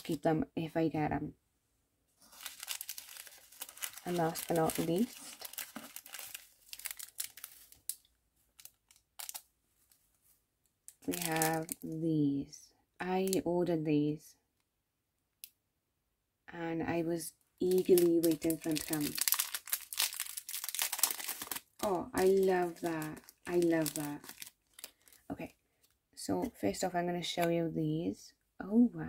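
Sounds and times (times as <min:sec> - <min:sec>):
shredded paper rustling: 0:02.2 - 0:07.9, 0:17.8 - 0:21.6.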